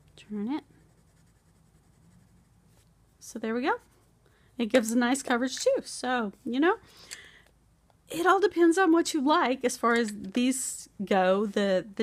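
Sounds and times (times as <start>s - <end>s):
low room hum: 0.0s - 12.0s
pencil scratching on paper: 0.6s - 2.9s.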